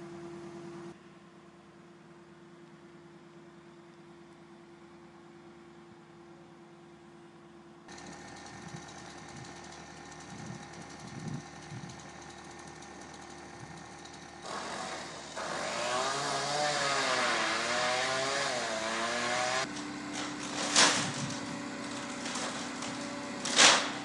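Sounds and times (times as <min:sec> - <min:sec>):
small engine at high revs: 0:07.9 - 0:23.9.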